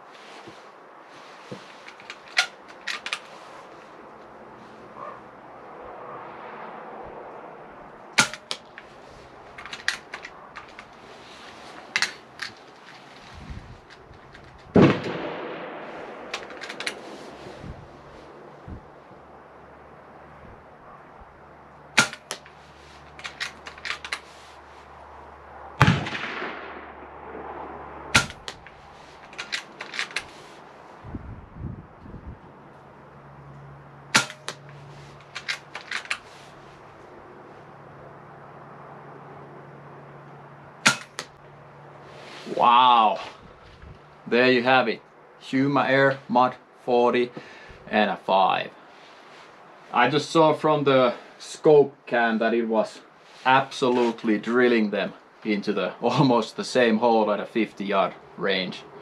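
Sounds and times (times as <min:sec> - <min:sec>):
rifle clicks: 0:01.9 - 0:03.3, 0:08.2 - 0:08.9, 0:09.6 - 0:11.0, 0:16.2 - 0:17.1, 0:22.0 - 0:24.3, 0:28.2 - 0:30.3, 0:34.1 - 0:36.3, 0:40.8 - 0:41.4
air rifle shots: 0:08.2 - 0:08.7, 0:14.7 - 0:17.2, 0:22.0 - 0:22.4, 0:25.8 - 0:28.7, 0:34.1 - 0:34.6, 0:40.8 - 0:41.3.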